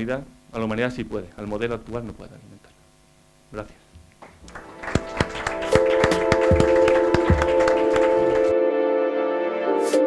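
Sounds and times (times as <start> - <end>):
small audience clapping: 4.2 - 8.5
music with sustained tones: 4.4 - 10.0.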